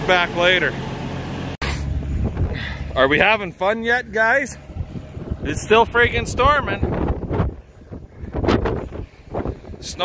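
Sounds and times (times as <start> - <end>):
tractor engine idling: 0.0 - 10.0
wind buffeting microphone: 2.0 - 3.0, 4.6 - 10.0.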